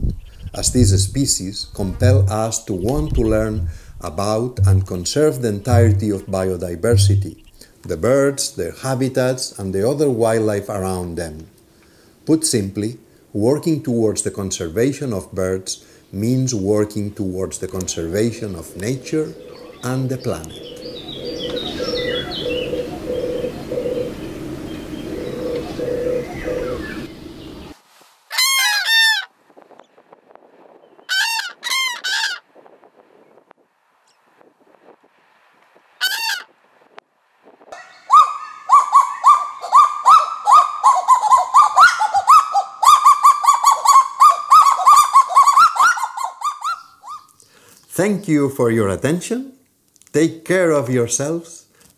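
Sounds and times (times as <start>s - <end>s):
doves purring: 0.5s - 4.0s, 18.0s - 27.7s
rapid repeated bird calls: 17.9s - 27.8s, 37.7s - 48.0s
cranes trumpeting: 20.6s - 27.6s.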